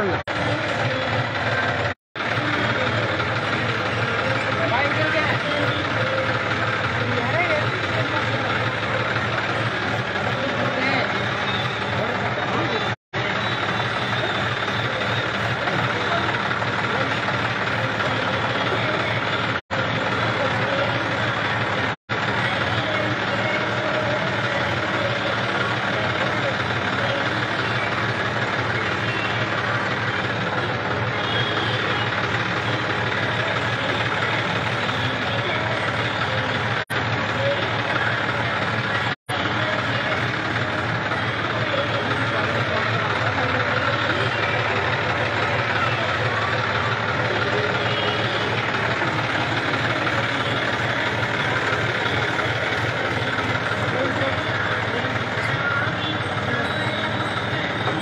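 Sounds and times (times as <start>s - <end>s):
people's voices: 0.0s - 58.0s
tractor engine idling: 0.0s - 58.0s.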